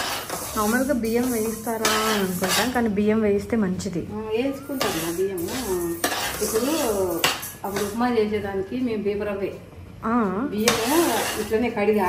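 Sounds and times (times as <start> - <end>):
spoon scraping a steel pan: 0.0 - 3.0, 4.6 - 8.1, 10.6 - 11.7.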